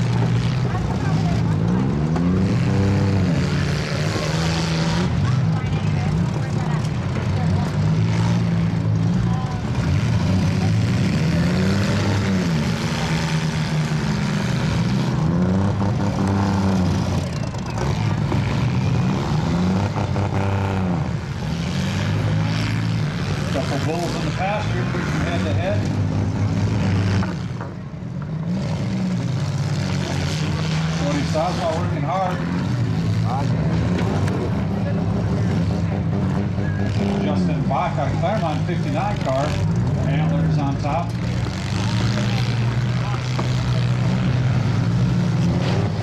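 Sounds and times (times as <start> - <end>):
car engines revving hard: 0.0 - 46.0.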